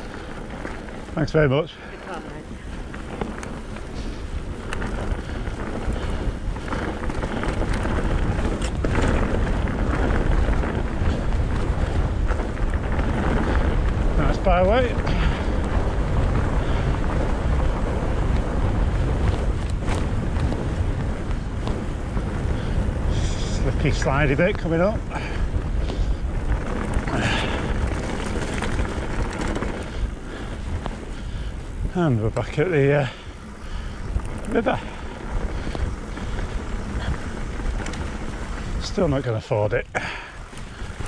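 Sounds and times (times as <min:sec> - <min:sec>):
bike tyres rolling over grass: 0:00.0 - 0:41.0
wind buffeting microphone: 0:00.0 - 0:41.0.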